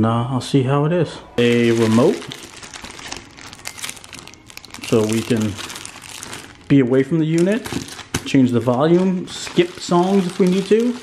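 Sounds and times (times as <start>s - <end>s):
plastic bag crinkling: 1.4s - 11.0s.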